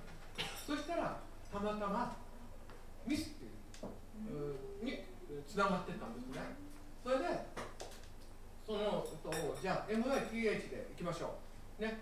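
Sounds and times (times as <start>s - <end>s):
person talking: 4.2s - 7.5s
dishes and cutlery clinking: 8.9s - 10.5s.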